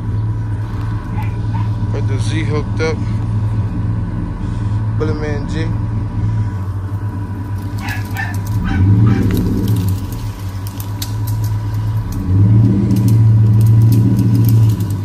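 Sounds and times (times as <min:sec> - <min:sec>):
pickup truck engine under load: 0:00.0 - 0:15.0
dog barking: 0:01.1 - 0:01.8, 0:07.8 - 0:09.5
log dragging on a chain: 0:07.3 - 0:15.0.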